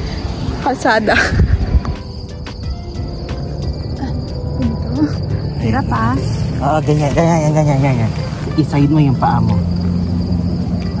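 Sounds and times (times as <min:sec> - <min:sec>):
wind rumble on microphone: 0:00.0 - 0:02.2
crickets trilling: 0:00.0 - 0:11.0.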